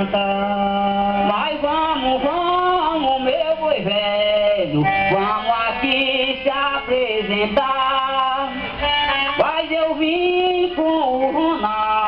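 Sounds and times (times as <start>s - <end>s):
instrumental accompaniment: 0.0s - 12.0s
man singing: 0.0s - 12.0s.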